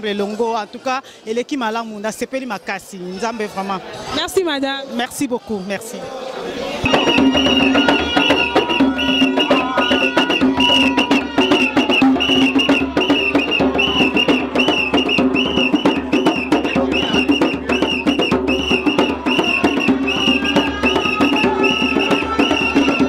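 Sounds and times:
hand drum dance music: 0:06.8 - 0:23.0.

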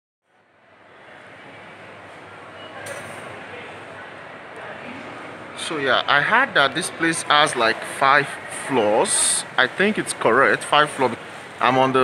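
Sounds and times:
shopping mall background noise: 0:00.3 - 0:12.0.

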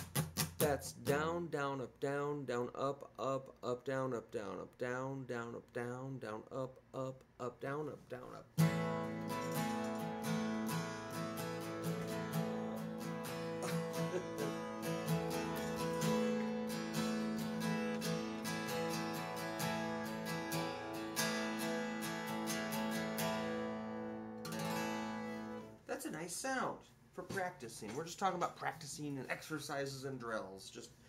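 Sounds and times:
acoustic guitar strumming: 0:00.0 - 0:01.7, 0:08.5 - 0:25.8.

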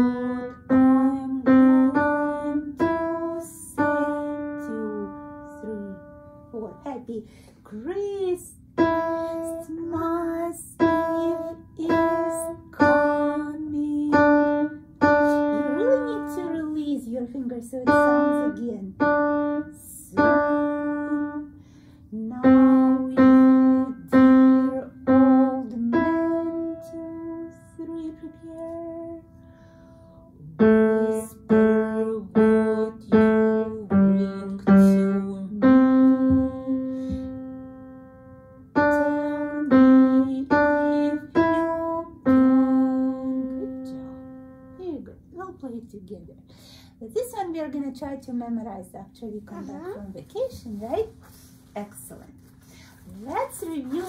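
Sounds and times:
slow piano melody: 0:00.0 - 0:07.0, 0:08.6 - 0:16.9, 0:17.8 - 0:45.3.

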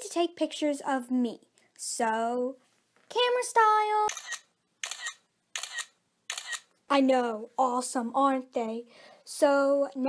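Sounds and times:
camera shutter clicks: 0:04.1 - 0:06.7.

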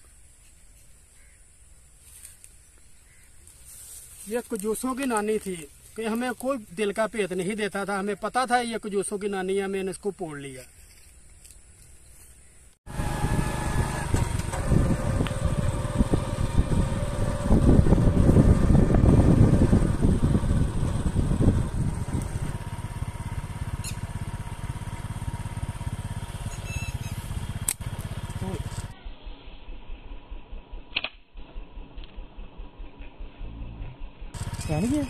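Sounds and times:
small engine running: 0:12.9 - 0:35.0.

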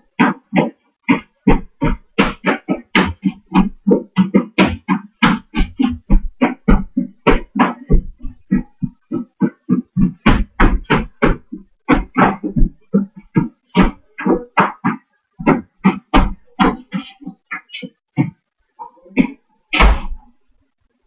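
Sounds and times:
tap shoes on hard floor: 0:00.2 - 0:18.4.

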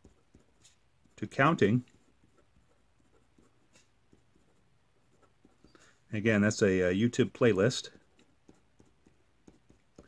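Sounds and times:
marker pen writing: 0:00.0 - 0:05.9, 0:07.6 - 0:10.0.

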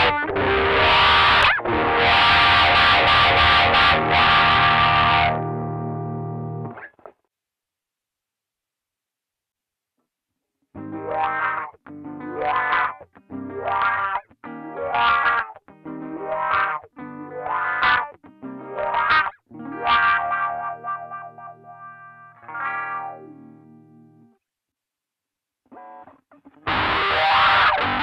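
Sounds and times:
distorted electric guitar with wah: 0:00.0 - 0:07.1, 0:10.8 - 0:23.7, 0:25.7 - 0:28.0.

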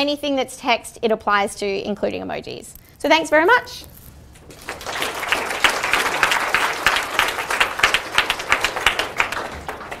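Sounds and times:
audience applauding: 0:04.5 - 0:10.0.

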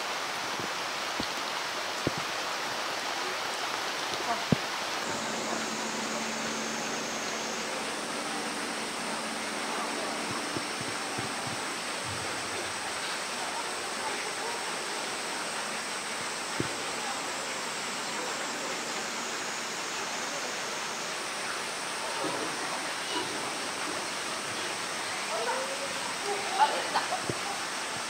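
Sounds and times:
falling water hiss: 0:00.0 - 0:28.0.

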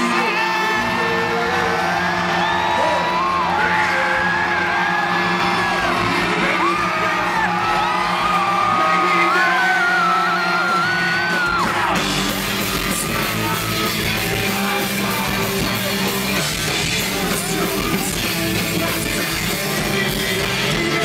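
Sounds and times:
bass guitar: 0:00.0 - 0:21.0
live band playing: 0:00.0 - 0:21.0
man singing: 0:11.6 - 0:21.0.

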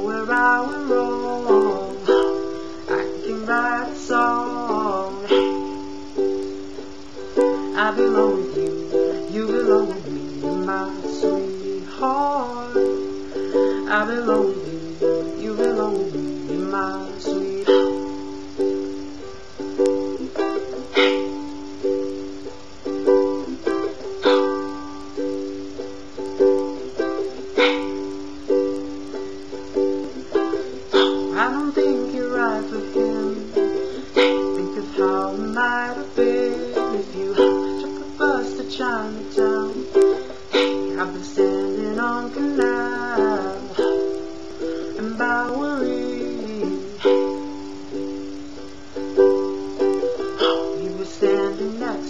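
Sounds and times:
ukulele strumming: 0:00.0 - 0:52.0.

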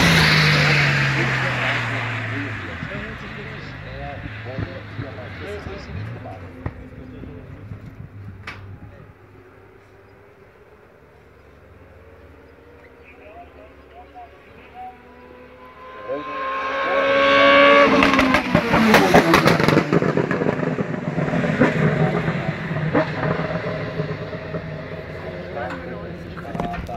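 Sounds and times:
race car engine at full throttle: 0:00.0 - 0:26.9.

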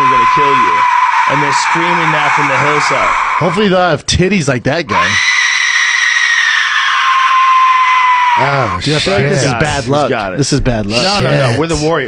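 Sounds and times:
death whistle shrieking: 0:00.0 - 0:04.0, 0:04.9 - 0:09.5.

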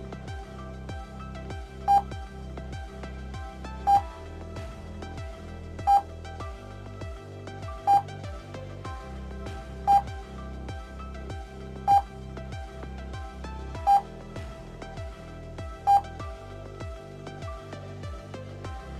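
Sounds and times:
electronic background music: 0:00.0 - 0:18.9.

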